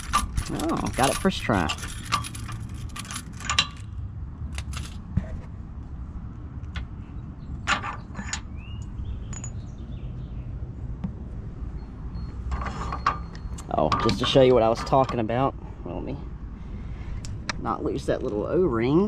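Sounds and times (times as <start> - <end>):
keys jangling: 0.0 - 5.0
low steady rumble: 0.0 - 19.0.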